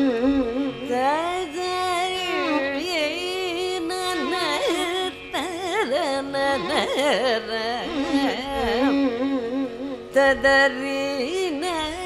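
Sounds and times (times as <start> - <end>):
woman singing with ornaments: 0.8 - 9.0, 10.1 - 12.0.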